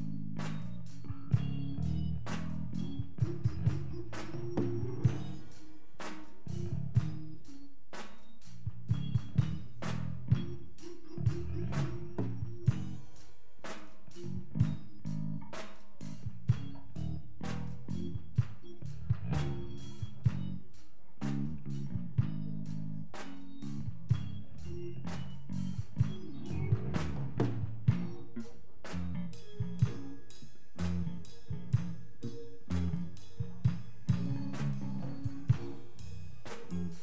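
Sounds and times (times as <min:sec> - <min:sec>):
bass guitar notes: 0:00.0 - 0:05.7, 0:06.4 - 0:07.6, 0:08.6 - 0:13.1, 0:14.1 - 0:37.0
drum kit beat: 0:00.0 - 0:37.0.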